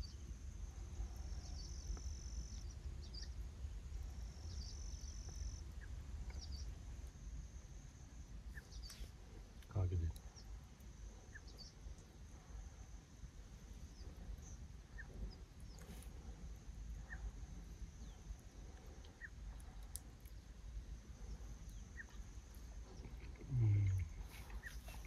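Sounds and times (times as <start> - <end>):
high insect drone: 0.0 - 25.0
low steady rumble: 0.0 - 25.0
man humming: 23.2 - 24.4.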